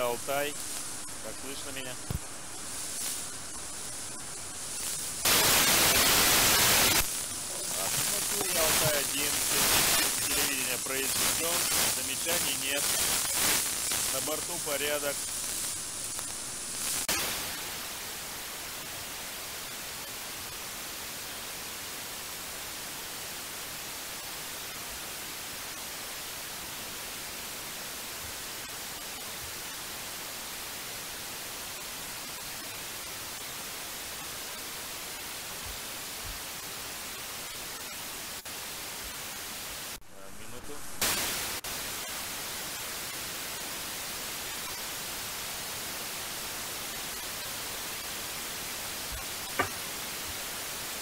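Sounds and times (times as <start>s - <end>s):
short radio burst: 0.0s - 17.7s
radio static hiss: 0.0s - 51.0s.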